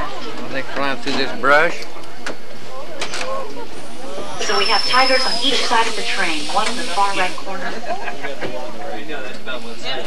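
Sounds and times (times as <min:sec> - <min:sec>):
faint voices: 0:00.0 - 0:10.0
tour train running: 0:03.5 - 0:09.7.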